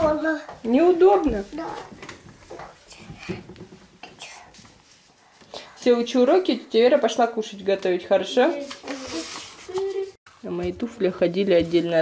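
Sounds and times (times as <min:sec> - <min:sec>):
person whispering: 0:04.0 - 0:04.6.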